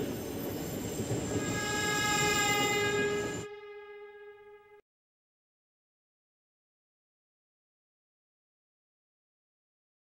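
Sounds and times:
train running rumble: 0.0 - 3.9
train horn long note: 1.2 - 4.8.

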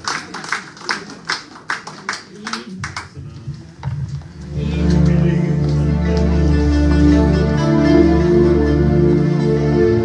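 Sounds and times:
rhythmic hand clapping: 0.0 - 3.2.

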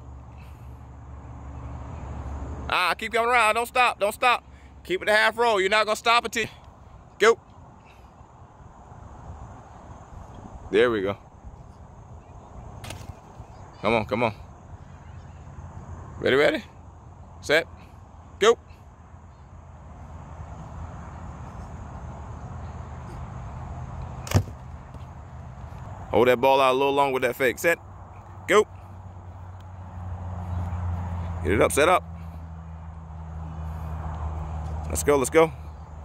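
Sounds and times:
sharp smack: 24.2 - 24.6.

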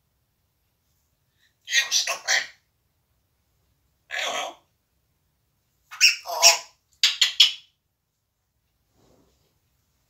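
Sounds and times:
parrot calling: 1.6 - 2.6, 4.1 - 4.7, 5.9 - 7.7.

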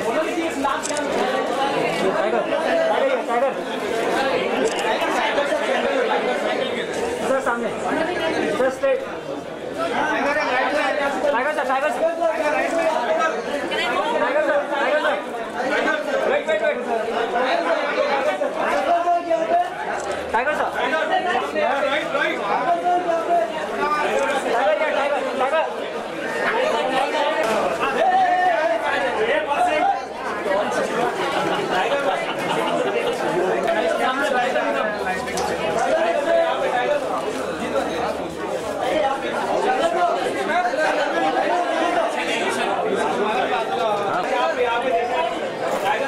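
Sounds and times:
people chattering: 0.0 - 46.0.

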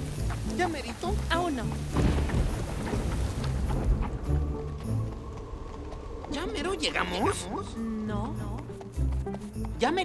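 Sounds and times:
heavy rain: 0.0 - 7.0
thunderclap rumbling: 1.6 - 7.8.

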